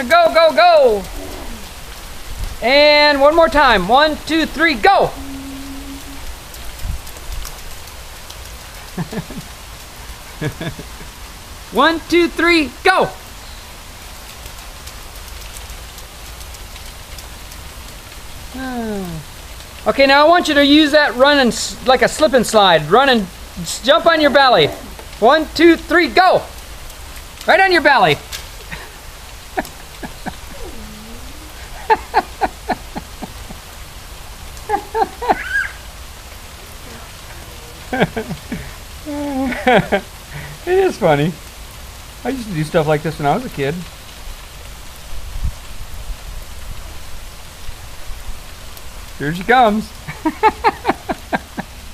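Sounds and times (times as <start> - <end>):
steady rain falling: 0.0 - 51.9
bursts of laughter: 8.9 - 9.6, 10.3 - 11.2, 28.6 - 33.8, 34.6 - 35.9, 37.7 - 40.6, 50.0 - 51.9.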